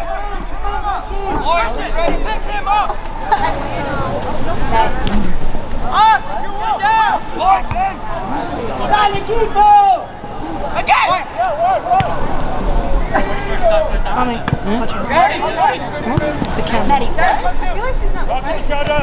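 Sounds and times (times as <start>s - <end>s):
background chatter: 0.0s - 19.0s
people calling out and talking: 0.0s - 19.0s.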